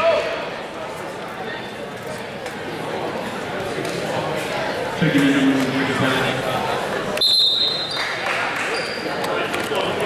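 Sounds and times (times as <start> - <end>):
crowd chatter echoing: 0.0 - 10.0
referee's whistle blast: 7.2 - 7.9.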